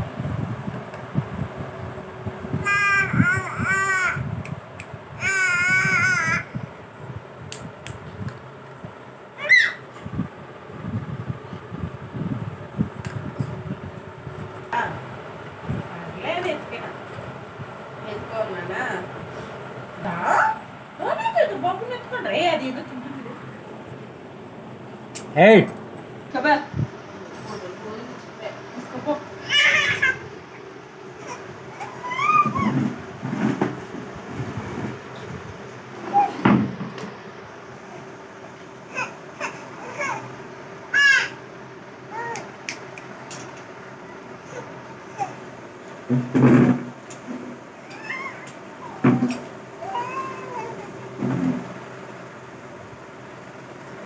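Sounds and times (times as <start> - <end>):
toddler whimpering: 2.6 - 4.3, 5.2 - 6.6, 31.2 - 32.8, 38.9 - 40.3, 47.8 - 51.0.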